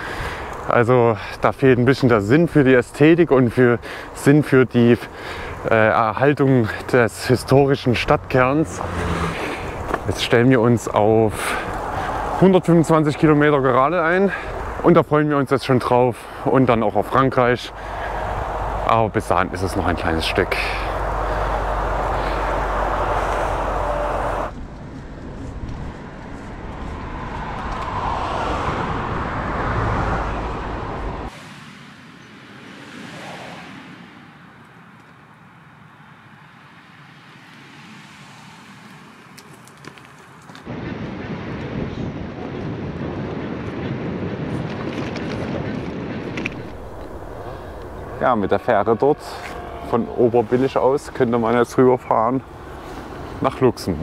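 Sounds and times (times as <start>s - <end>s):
wind rushing over microphone: 0.0s - 35.5s, 40.7s - 54.0s
road traffic: 0.0s - 41.4s, 43.3s - 54.0s.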